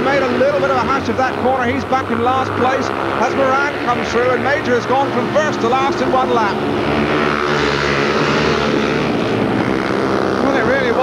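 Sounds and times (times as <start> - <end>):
racing motorcycle engines: 0.0 - 11.0.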